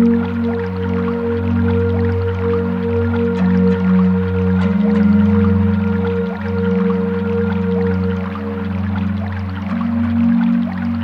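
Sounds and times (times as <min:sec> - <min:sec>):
ambient music with held pad tones: 0:00.0 - 0:11.0
small creek plashing: 0:00.0 - 0:11.0.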